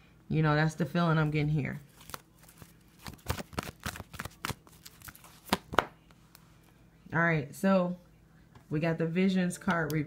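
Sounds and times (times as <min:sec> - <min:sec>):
cards being shuffled: 0:01.9 - 0:06.4.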